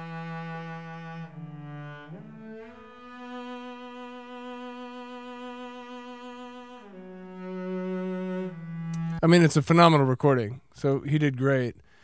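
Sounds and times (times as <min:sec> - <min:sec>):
bowed cello notes: 0:00.0 - 0:09.9.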